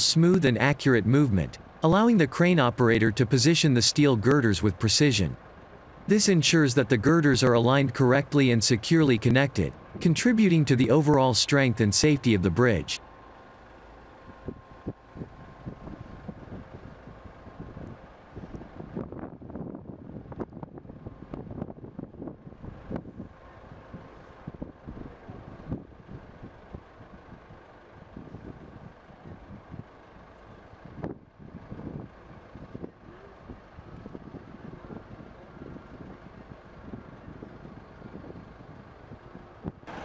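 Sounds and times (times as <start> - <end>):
heavy machinery rumble: 0.0 - 40.0
wind gusting on microphone: 14.3 - 29.9, 30.8 - 40.0.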